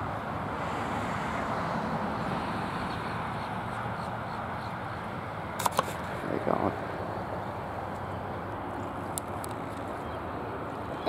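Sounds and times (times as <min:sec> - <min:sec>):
outdoor background noise: 0:00.0 - 0:11.0
camera handling clicks: 0:05.6 - 0:06.0.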